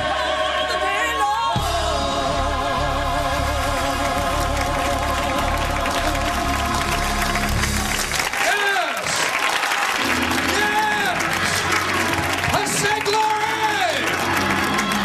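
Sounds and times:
gospel choir singing: 0.0 - 8.1
applause and cheering: 3.1 - 15.0.

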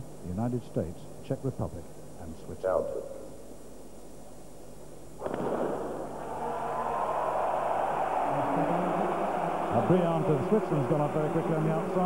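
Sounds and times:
starting pistol shot: 5.2 - 6.1
stadium crowd cheering: 5.9 - 12.0.

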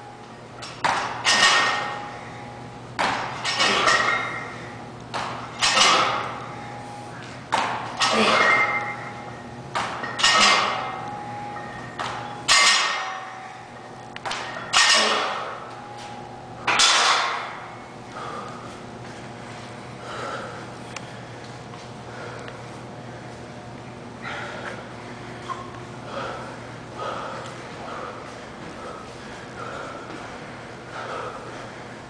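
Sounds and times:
barbell plates ringing: 0.6 - 4.8, 5.5 - 6.9, 8.0 - 18.5
man breathing forcefully: 18.0 - 23.5, 24.2 - 25.4, 26.0 - 32.0.

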